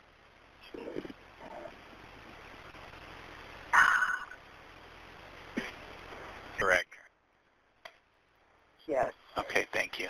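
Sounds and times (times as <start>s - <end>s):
telephone line hiss: 3.6s - 4.5s.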